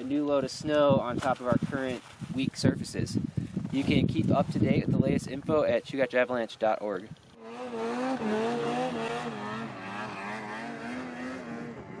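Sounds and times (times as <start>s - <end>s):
snowmobile engine revving: 7.4s - 12.0s.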